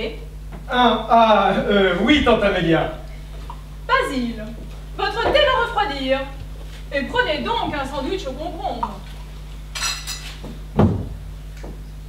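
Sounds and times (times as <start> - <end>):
dull thump: 10.8 - 11.3.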